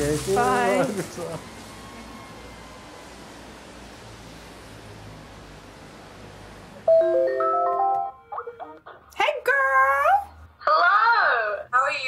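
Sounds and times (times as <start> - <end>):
women calling out greetings: 0.4 - 1.0.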